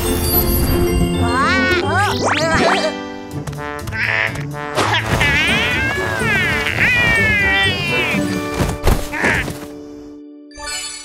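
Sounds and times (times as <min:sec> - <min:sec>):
children's background music: 0:00.0 - 0:11.0
cartoon baby dinosaur squealing: 0:04.0 - 0:08.3, 0:09.1 - 0:09.5.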